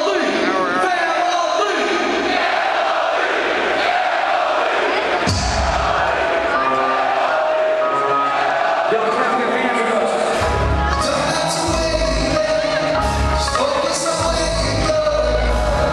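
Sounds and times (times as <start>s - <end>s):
crowd shouting and cheering: 0.0s - 15.9s
amplified rap-rock music: 9.0s - 15.9s.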